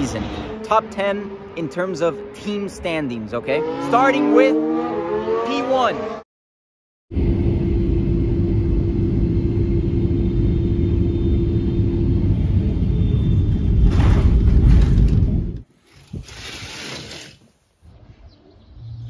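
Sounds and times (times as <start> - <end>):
jet engine and airflow rumble: 7.1 - 15.6.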